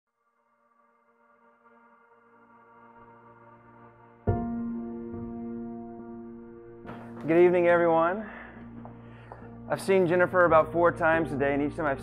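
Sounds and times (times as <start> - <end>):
soft ambient music chord: 0.1 - 12.0.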